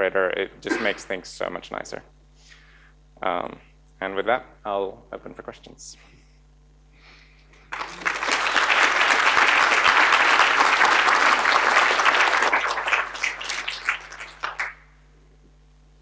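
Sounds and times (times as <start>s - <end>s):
audience applauding: 7.7s - 14.9s.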